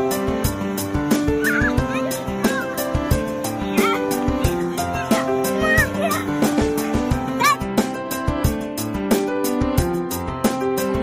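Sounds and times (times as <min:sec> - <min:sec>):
background music with steady beat: 0:00.0 - 0:11.0
squeaky pitch-bending calls: 0:01.1 - 0:06.4.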